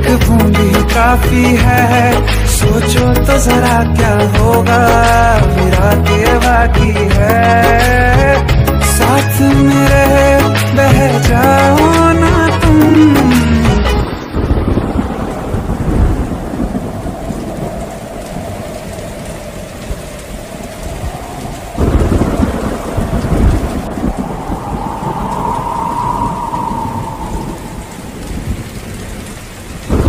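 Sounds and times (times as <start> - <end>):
steady rainfall: 0.0 - 30.0
rolling thunder: 14.0 - 30.0
loud thunderclap: 14.3 - 30.0.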